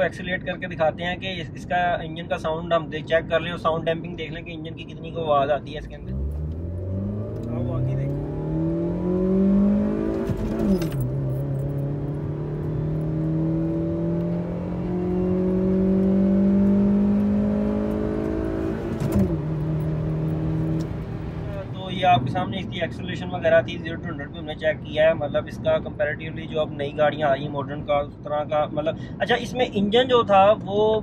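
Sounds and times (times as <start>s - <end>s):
car engine revving: 5.8s - 22.5s.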